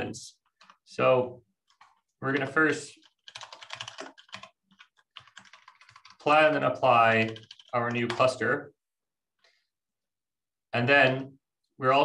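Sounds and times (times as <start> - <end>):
typing on a computer keyboard: 0.5 - 0.8, 1.7 - 6.5, 7.2 - 8.3.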